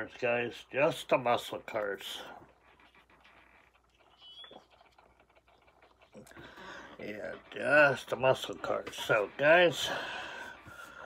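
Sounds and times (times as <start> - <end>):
faint high squeak: 4.0 - 4.8.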